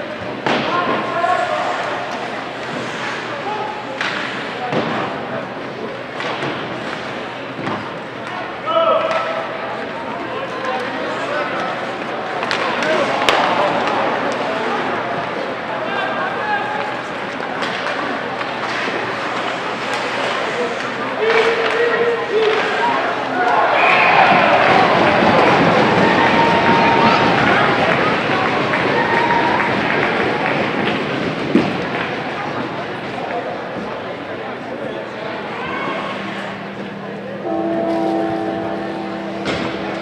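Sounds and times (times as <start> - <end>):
spectators and players shouting: 22.4 - 28.0.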